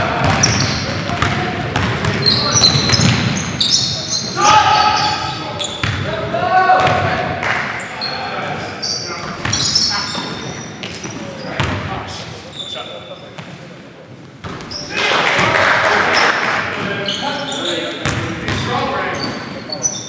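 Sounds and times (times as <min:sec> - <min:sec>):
players calling out: 0:00.0 - 0:13.2
sneaker squeaks: 0:00.2 - 0:01.1, 0:01.8 - 0:06.1, 0:07.8 - 0:11.8, 0:12.4 - 0:13.6, 0:14.4 - 0:15.0, 0:16.8 - 0:20.0
basketball bouncing on wooden court: 0:00.2 - 0:03.4, 0:05.8 - 0:06.0, 0:18.0 - 0:18.7.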